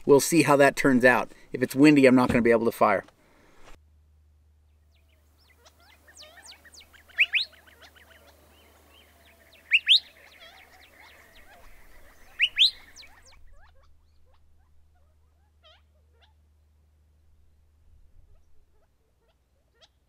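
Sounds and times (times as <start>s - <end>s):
faint bird chirps: 4.6s - 20.0s
loud rising bird chirps: 4.7s - 16.4s.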